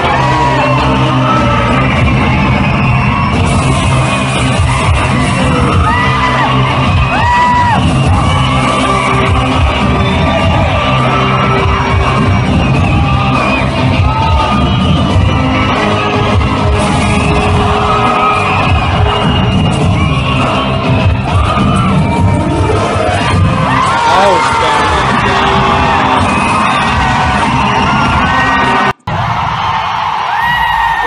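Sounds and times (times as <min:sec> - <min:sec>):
film music playing loudly: 0:00.0 - 0:30.1
audience yelling and cheering: 0:00.0 - 0:31.0
sharp whistles: 0:06.4 - 0:22.2.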